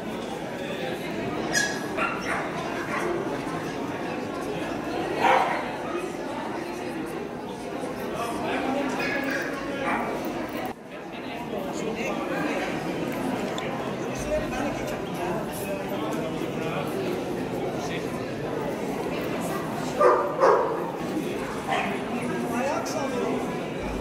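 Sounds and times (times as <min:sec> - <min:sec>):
murmur of people talking: 0:00.0 - 0:24.0
dog barking: 0:01.5 - 0:03.1, 0:05.2 - 0:05.6, 0:20.0 - 0:20.8, 0:21.7 - 0:22.0.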